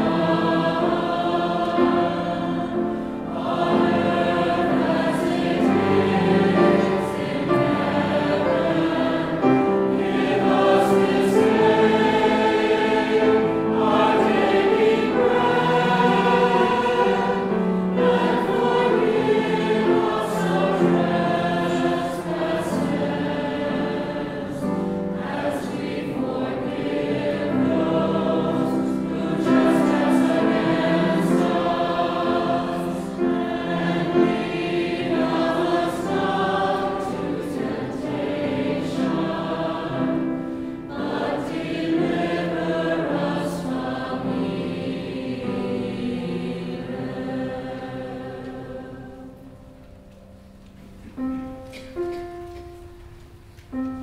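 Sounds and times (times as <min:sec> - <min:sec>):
mixed choir singing: 0:00.0 - 0:49.9.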